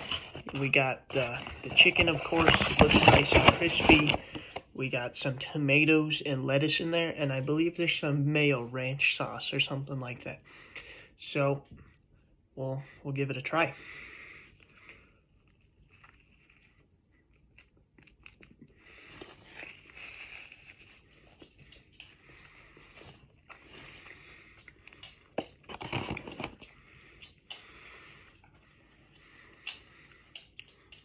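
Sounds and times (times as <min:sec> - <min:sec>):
person chewing crispy food: 0:14.0 - 0:31.0.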